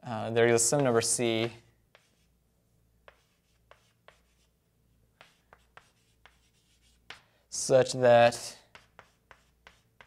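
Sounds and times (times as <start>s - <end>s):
chalk writing on a blackboard: 0.6s - 2.4s, 3.0s - 7.4s, 8.4s - 10.0s.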